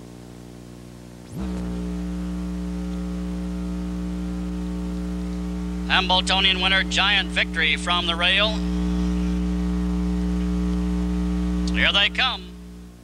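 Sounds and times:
electrical mains hum: 0.0 - 13.0
tape hiss: 0.0 - 13.0.

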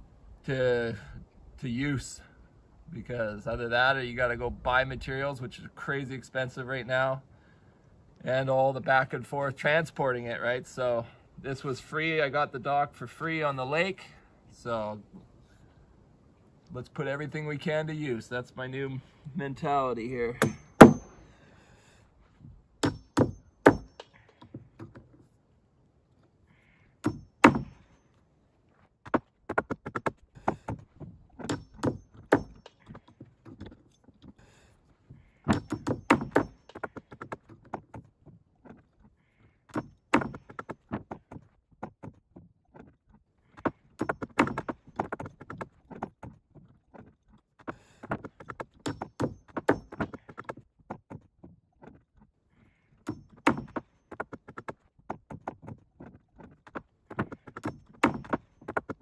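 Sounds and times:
hammer knocking nails out of boards: 20.4 - 21.2, 22.8 - 25.0, 27.0 - 27.8, 31.4 - 33.1, 35.5 - 37.9, 39.7 - 42.2, 43.6 - 45.6, 48.0 - 51.2, 53.0 - 55.6, 57.1 - 59.0.

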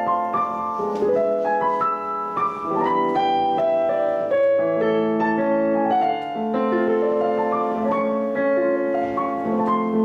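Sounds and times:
digital piano playing: 0.0 - 10.0.

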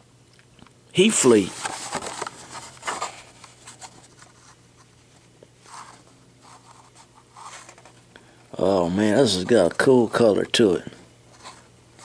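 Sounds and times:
faint steady hum: 0.0 - 12.0
plastic packaging rustling: 1.3 - 8.0.

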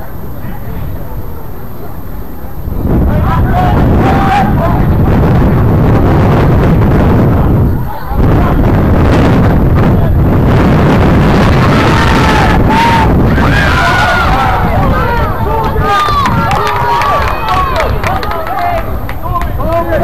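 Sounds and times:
distant shouting: 0.0 - 5.4, 11.3 - 20.0
wind buffeting microphone: 0.0 - 20.0.

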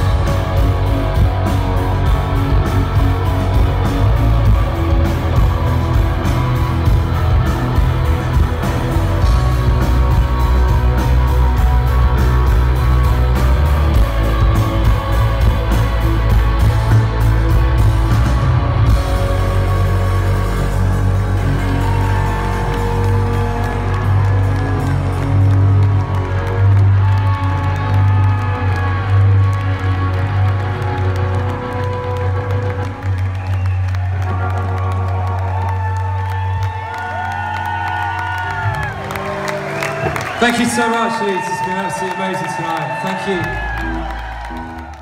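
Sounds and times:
heavy low bass: 0.0 - 33.1
distorted guitars with feedback: 0.0 - 33.4
crowd cheering and whooping: 0.0 - 45.0.

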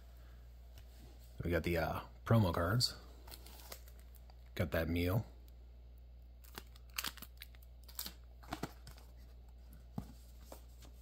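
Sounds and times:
cellophane crinkling: 6.4 - 9.3.

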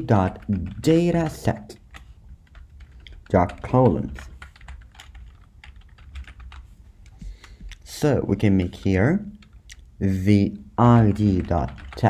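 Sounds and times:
computer keyboard typing: 0.0 - 7.8, 8.4 - 9.9, 10.8 - 12.0.

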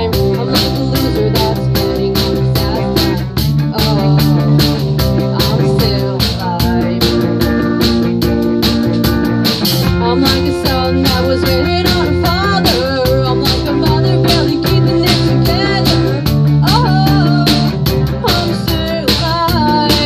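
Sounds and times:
rock band playing: 0.0 - 20.0.

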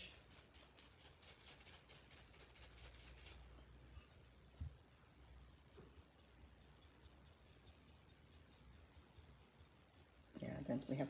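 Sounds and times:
paintbrush scratching on paper: 0.0 - 11.0.

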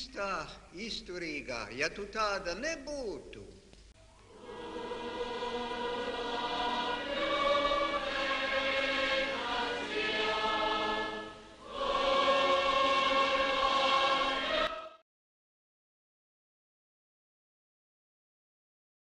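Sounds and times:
choir singing long held notes: 4.3 - 15.0.

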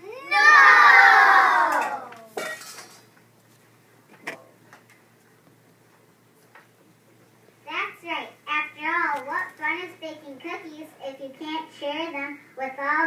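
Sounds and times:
children shouting together: 0.0 - 2.1
plates clattering: 2.4 - 3.1.

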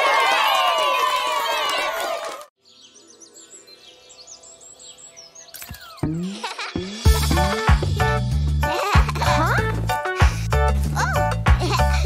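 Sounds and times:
crowd cheering: 0.0 - 2.5
cartoon birds chirping: 2.6 - 9.6.

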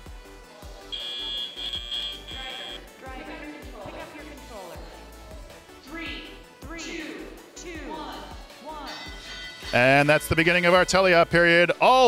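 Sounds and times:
background music: 0.0 - 12.0
high-pitched timer beep: 0.9 - 2.9.

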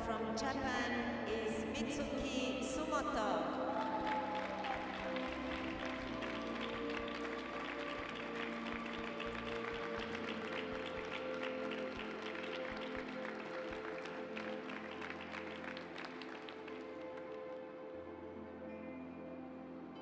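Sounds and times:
music over loudspeakers: 0.0 - 17.7
audience clapping: 3.7 - 17.6.

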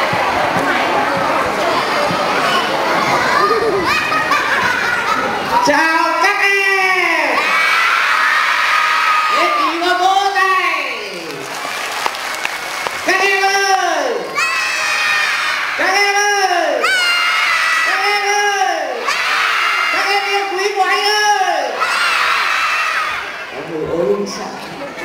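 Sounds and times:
children cheering: 0.0 - 5.6, 7.4 - 10.0, 11.2 - 16.0, 16.8 - 18.1, 19.0 - 20.3, 21.6 - 23.4
children shouting in unison: 1.8 - 5.6, 7.3 - 9.8, 14.3 - 15.9, 16.7 - 18.2, 18.9 - 20.1, 21.6 - 23.5.

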